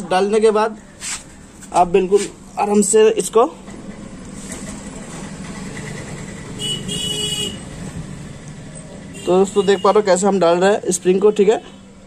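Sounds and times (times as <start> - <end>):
vehicle horn: 6.6 - 7.8, 9.1 - 10.2.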